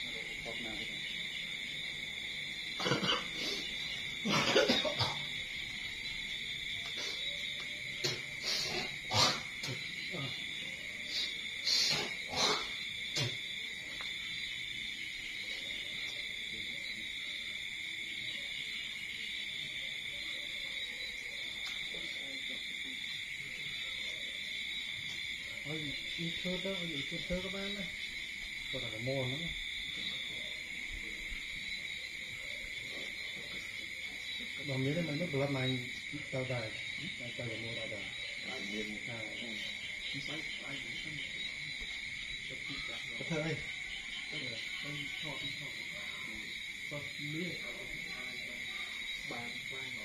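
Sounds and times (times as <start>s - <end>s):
night insect chorus: 0.0s - 50.0s.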